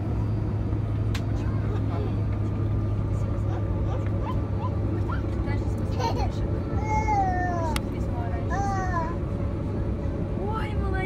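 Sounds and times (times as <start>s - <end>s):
jet engines idling rumble: 0.0s - 11.0s.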